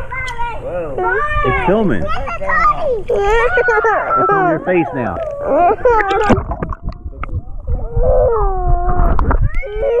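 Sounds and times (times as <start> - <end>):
child wailing: 3.1 - 4.6, 5.2 - 6.4, 7.8 - 10.0
water sloshing and knocking: 6.0 - 7.9.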